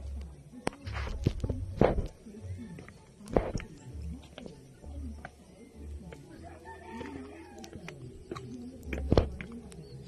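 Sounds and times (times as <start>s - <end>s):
low rumbling microphone noise: 0.0s - 6.4s
rooster crowing: 6.4s - 7.9s.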